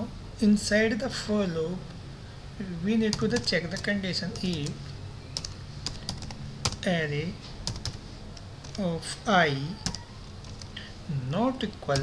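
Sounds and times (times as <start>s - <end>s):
computer keyboard keystrokes: 5.4s - 6.8s, 7.6s - 8.8s, 9.8s - 10.8s.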